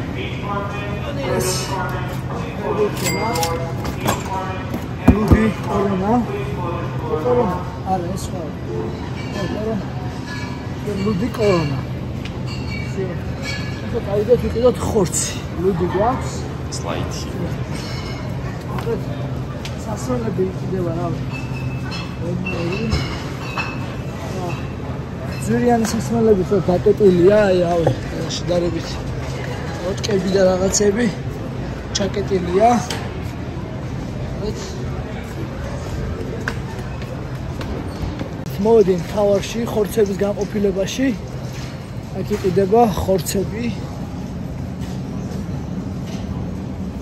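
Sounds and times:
men talking: 0.0 - 10.0, 10.8 - 12.1, 12.9 - 17.8, 18.5 - 21.3, 24.2 - 33.1, 38.4 - 41.3, 42.0 - 44.0.

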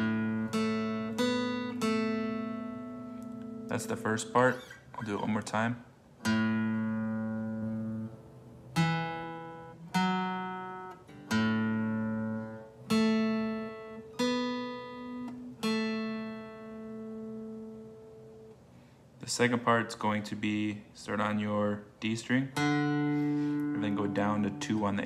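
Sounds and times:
acoustic guitar single-note riff: 0.0 - 5.5, 6.2 - 18.6, 22.5 - 25.0.

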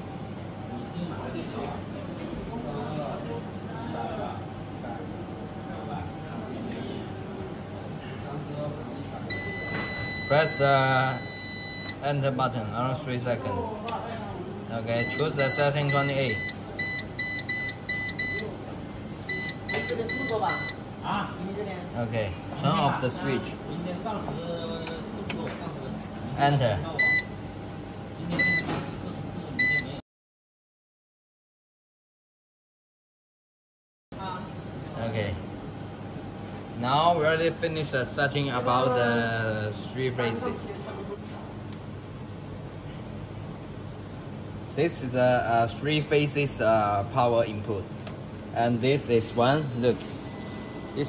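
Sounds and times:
high-pitched buzzer beep: 9.3 - 12.0, 15.0 - 18.5, 19.3 - 20.8.

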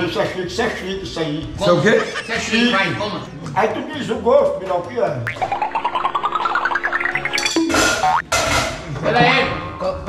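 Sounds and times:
rapid rising cartoon notes: 5.3 - 8.2.

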